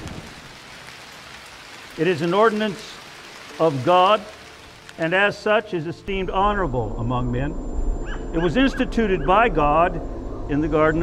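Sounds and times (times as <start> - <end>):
heavy rain on hard surface: 0.0 - 6.7
thunder rumble: 6.0 - 11.0.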